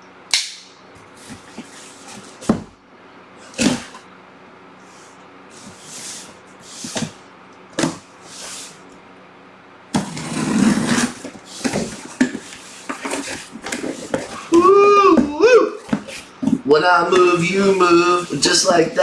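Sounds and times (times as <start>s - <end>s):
man's voice: 16.7s - 19.0s.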